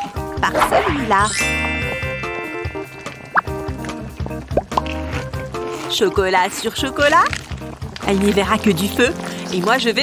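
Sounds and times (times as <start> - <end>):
background music: 0.0 - 10.0
drip-like plops: 3.3 - 5.1.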